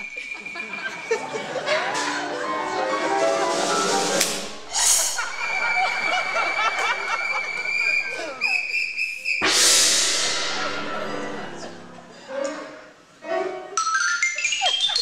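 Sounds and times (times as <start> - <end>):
piano playing: 1.0 - 4.7, 9.4 - 15.0
cymbal crash: 9.4 - 12.2
steady high tone: 9.4 - 12.3.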